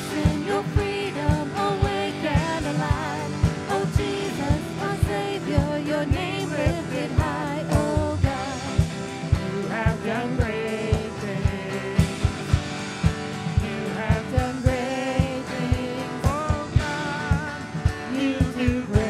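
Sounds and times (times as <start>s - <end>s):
acoustic guitar: 0.0s - 19.0s
man singing: 5.4s - 12.7s, 13.6s - 19.0s.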